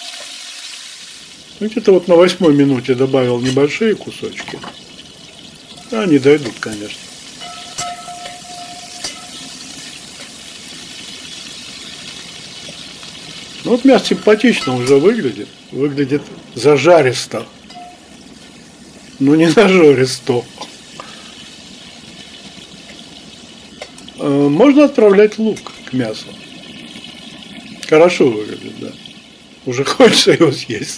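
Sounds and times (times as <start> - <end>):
meat sizzling in oil: 0.0 - 30.9
spoon stirring: 5.7 - 10.4, 13.7 - 15.4, 17.7 - 18.1
faint steady tone: 7.4 - 9.7
spoon knocking on pot: 7.4 - 10.3, 14.0 - 15.2, 17.7 - 18.1.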